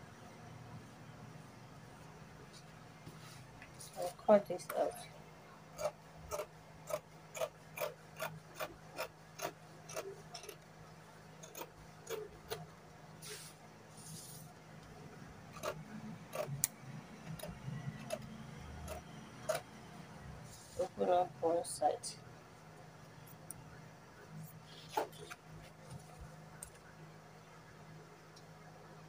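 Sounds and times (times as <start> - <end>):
scissors snipping fabric: 5.8 - 10.6, 11.4 - 12.6, 15.5 - 18.3, 18.9 - 19.6.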